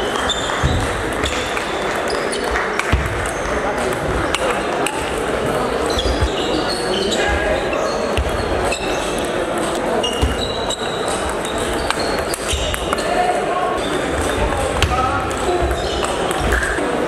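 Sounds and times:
murmur of voices: 0.0s - 17.0s.

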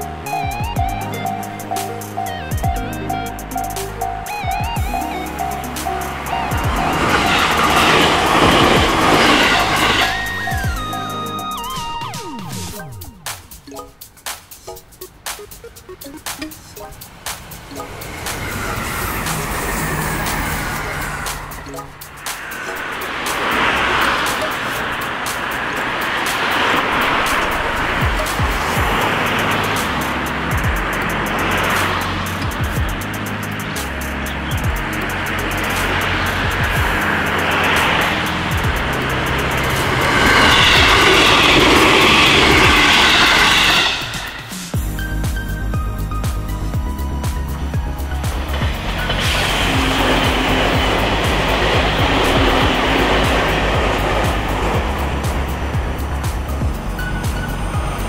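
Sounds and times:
background music: 0.0s - 58.0s
electric train rushing past: 0.0s - 58.0s.

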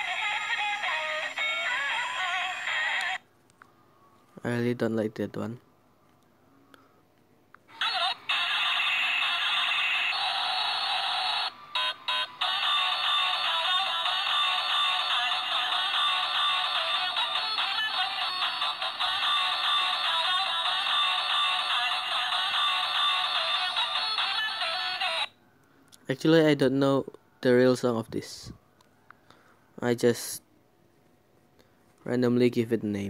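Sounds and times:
tinny electronic toy song: 0.0s - 3.2s, 7.7s - 25.3s.

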